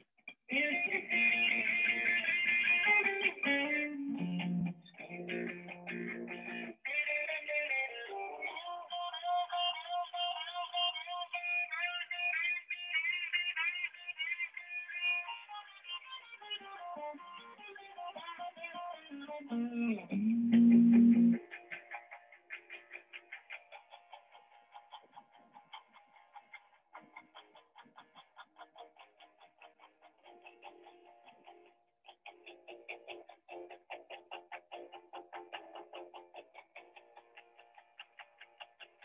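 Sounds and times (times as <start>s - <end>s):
electric guitar playing: 0.0s - 39.0s.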